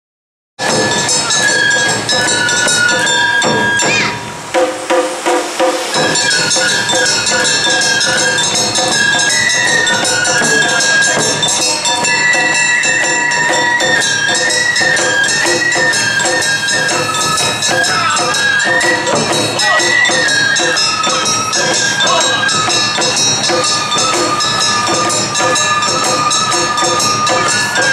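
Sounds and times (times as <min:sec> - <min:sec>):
drums: 0:00.6 - 0:27.9
flute melody: 0:00.6 - 0:27.9.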